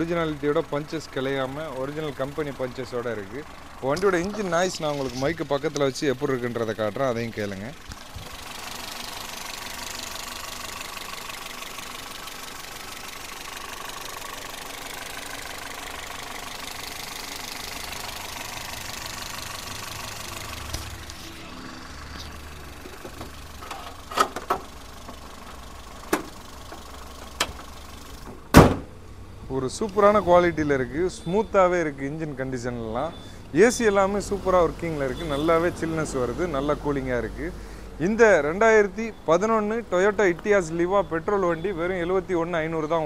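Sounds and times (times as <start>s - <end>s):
car engine idling: 0.0s - 43.0s
sharp clicks and knocks: 22.8s - 28.9s.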